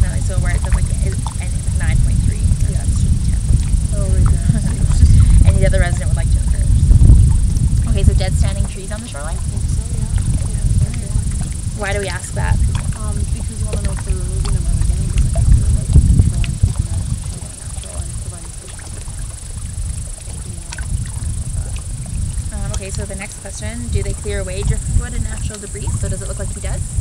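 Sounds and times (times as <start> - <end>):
quiet talk: 0.0 - 6.8, 7.8 - 19.2, 20.2 - 21.8, 22.4 - 26.9
wind rumble on microphone: 0.0 - 27.0.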